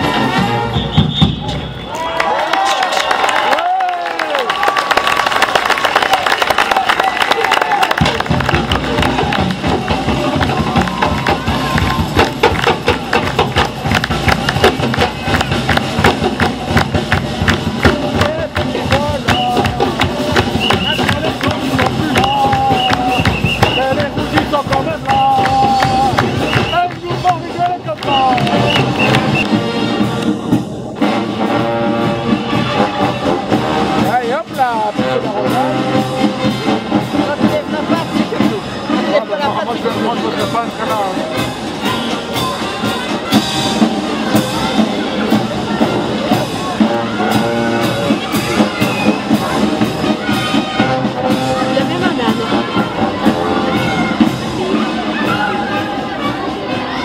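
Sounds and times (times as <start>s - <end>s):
parade band music: 0.0s - 2.0s, 7.8s - 57.0s
crowd voices chattering: 0.0s - 57.0s.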